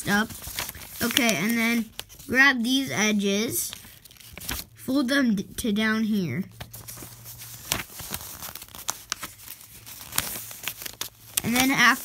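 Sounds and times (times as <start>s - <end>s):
paper crinkling and folding: 0.0s - 4.8s, 6.5s - 12.0s.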